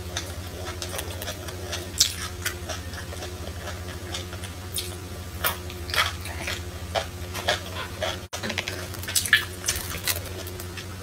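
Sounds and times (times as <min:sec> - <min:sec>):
low hum: 0:00.0 - 0:11.0
wet chewing crunches: 0:00.0 - 0:11.0.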